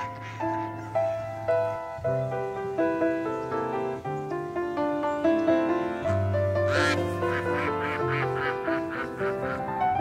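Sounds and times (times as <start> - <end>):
ducks quacking: 0.0 - 1.8, 5.8 - 10.0
soft piano music: 0.0 - 10.0.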